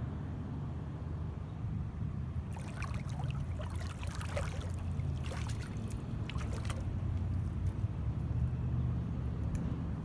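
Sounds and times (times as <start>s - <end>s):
steady low rumble: 1.9s - 10.0s
pool water sloshing and splashing: 2.4s - 7.8s.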